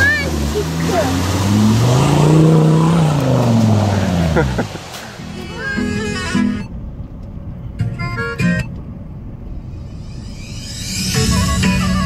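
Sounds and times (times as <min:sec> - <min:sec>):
engine revving: 0:00.0 - 0:06.7.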